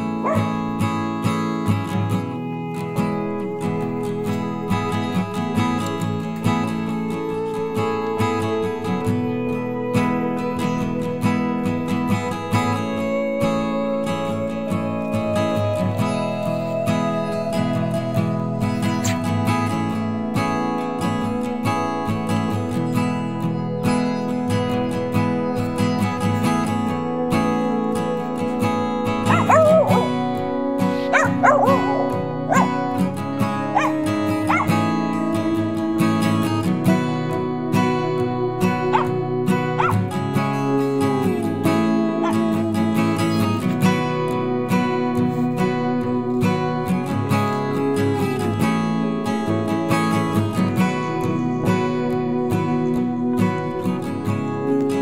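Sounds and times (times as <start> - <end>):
dog calling: 0.0 - 0.9, 18.6 - 19.5, 29.2 - 35.1, 38.8 - 40.2, 42.1 - 43.8
acoustic guitar music: 0.0 - 55.0.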